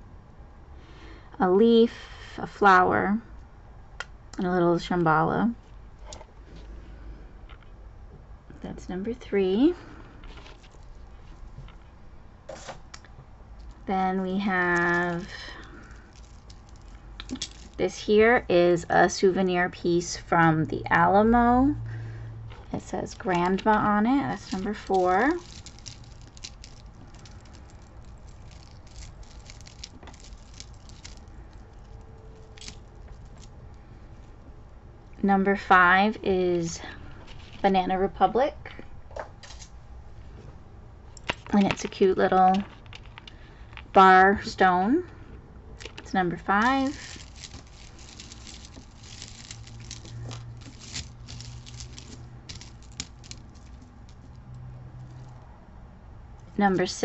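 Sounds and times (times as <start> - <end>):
low steady hum: 0.0 - 57.0
jewelry clicks and rustles: 13.0 - 18.4, 22.5 - 34.3, 41.1 - 44.1, 45.8 - 55.4.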